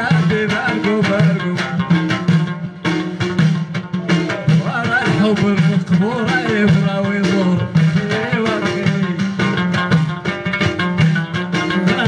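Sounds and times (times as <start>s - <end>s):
frame drums and tambourines: 0.0s - 12.0s
plucked lute melody: 0.0s - 12.0s.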